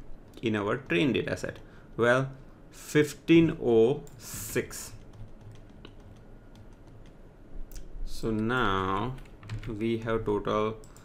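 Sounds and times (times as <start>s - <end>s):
faint keyboard typing: 3.9s - 11.0s.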